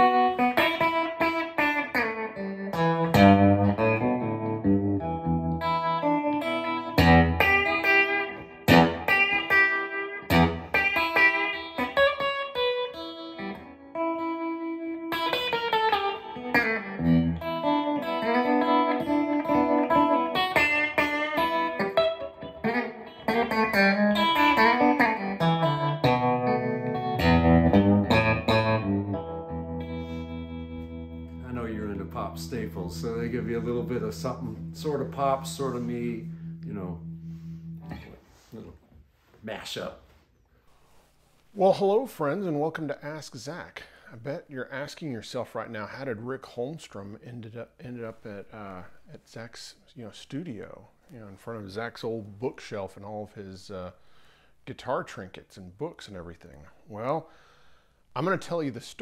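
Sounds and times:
solo electric guitar: 0.0 - 39.0.

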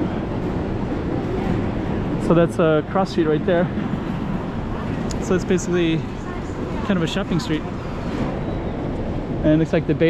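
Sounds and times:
city street rumble: 0.0 - 10.0.

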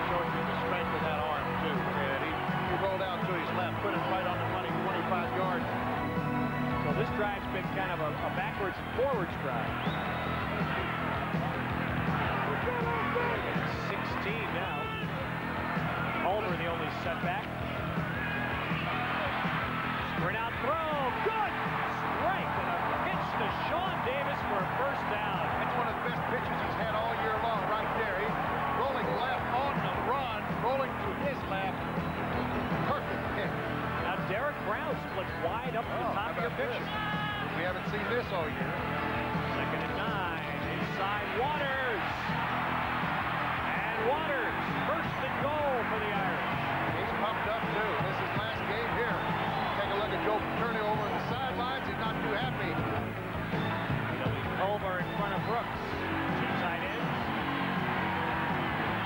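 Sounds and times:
crowd shouting and cheering: 0.0 - 59.0
music with held notes: 0.0 - 59.0.

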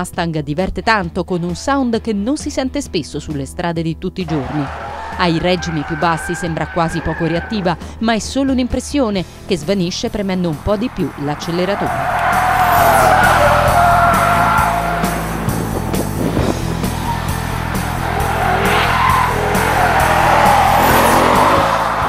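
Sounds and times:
background music with steady beat: 0.0 - 22.0
tyres squealing: 4.3 - 22.0
car engine revving hard: 10.1 - 22.0.

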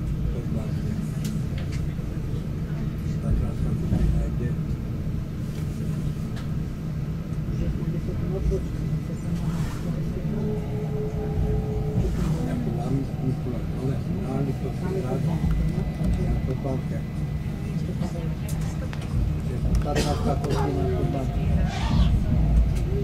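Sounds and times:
electric railcar rumbling: 0.0 - 23.0
steady whine: 0.0 - 23.0.

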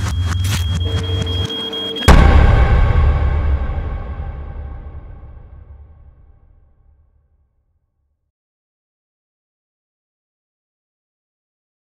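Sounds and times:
steady high beep tone: 0.0 - 2.7
low hum: 0.0 - 6.9.

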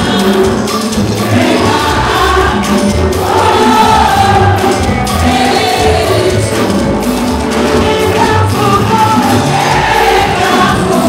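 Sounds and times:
gospel band playing: 0.0 - 11.0
many voices singing: 0.0 - 11.0.

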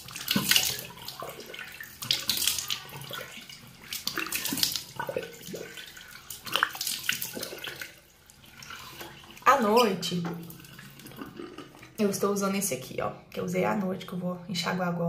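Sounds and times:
water splashing on face: 0.0 - 12.0.

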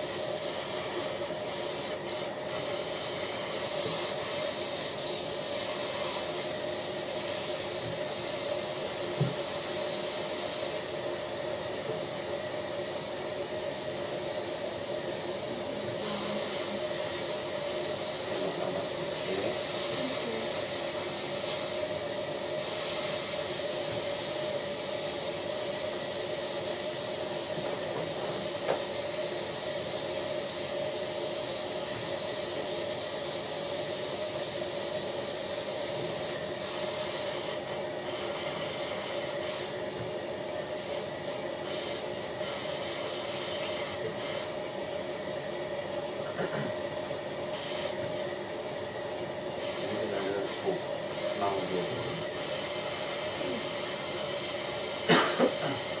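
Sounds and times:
dental suction hissing: 0.0 - 44.6.

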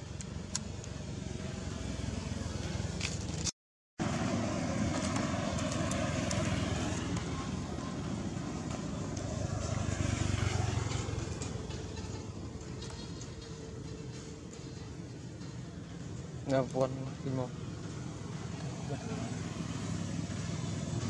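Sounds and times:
vehicle engine rumble: 0.0 - 21.0.

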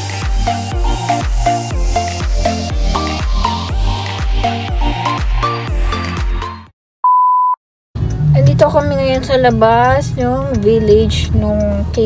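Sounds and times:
background music: 0.0 - 6.7
high-pitched test-tone beep: 7.0 - 7.6.

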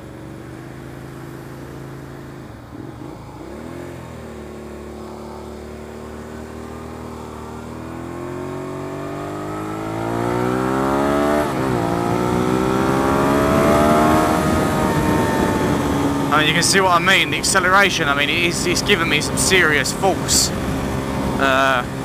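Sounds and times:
motorcycle engine accelerating: 0.0 - 22.0.

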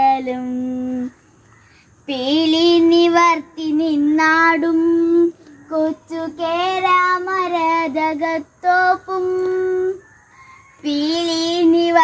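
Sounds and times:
boy singing unaccompanied: 0.0 - 1.4, 2.0 - 10.0, 10.7 - 12.0.

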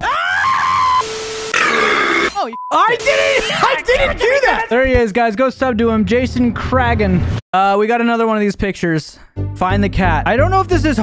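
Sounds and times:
man screaming: 1.6 - 4.7.

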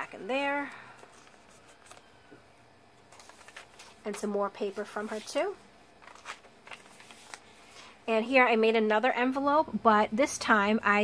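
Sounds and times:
paper pages rustling: 0.6 - 2.4, 3.0 - 8.0.

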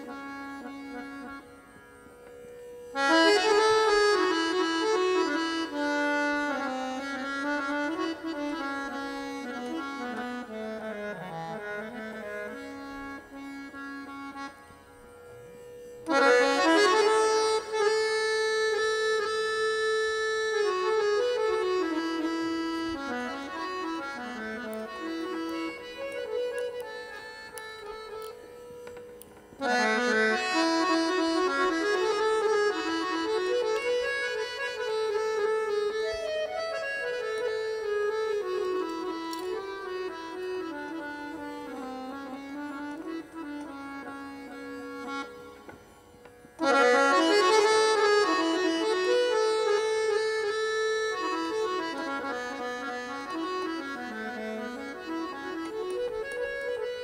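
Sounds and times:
harmonium melody: 0.0 - 57.0.

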